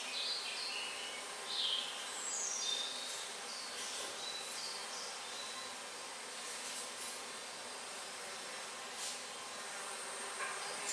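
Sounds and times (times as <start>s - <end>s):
insects hissing: 0.0s - 10.9s.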